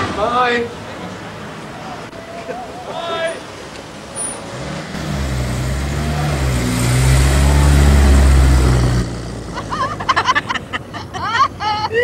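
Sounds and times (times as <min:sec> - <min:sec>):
sports car engine driving past: 0:04.4 - 0:10.1.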